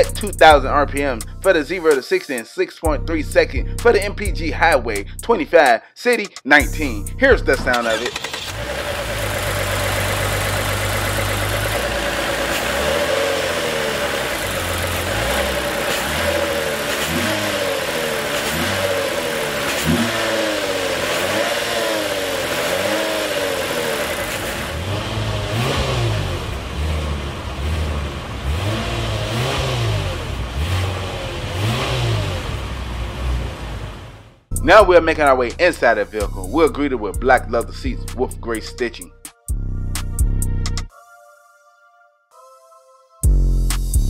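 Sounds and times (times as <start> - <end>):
car engine idling and revving: 0.0 - 1.5, 6.6 - 34.6.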